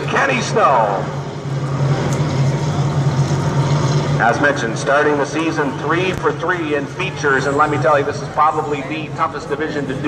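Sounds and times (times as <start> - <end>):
race car engines droning: 0.0 - 10.0.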